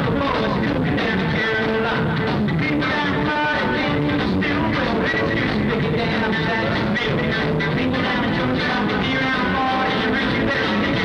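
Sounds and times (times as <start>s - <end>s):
bass guitar: 0.0s - 11.0s
drums: 0.0s - 11.0s
electric guitar: 0.0s - 11.0s.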